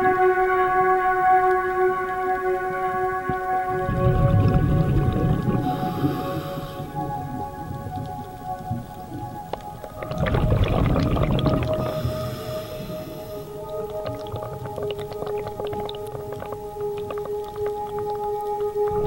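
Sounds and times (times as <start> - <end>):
droning tones: 0.0 - 19.0
scuba bubbles rushing: 3.6 - 19.0
sharp underwater clicks: 4.2 - 19.0.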